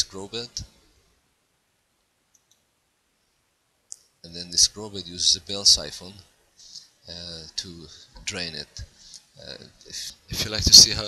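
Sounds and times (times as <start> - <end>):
faint mouse clicks: 2.3 - 2.7.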